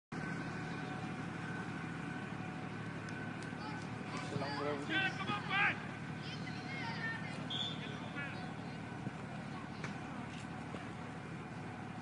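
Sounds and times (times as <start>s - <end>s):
faint voices: 0.4s - 12.0s.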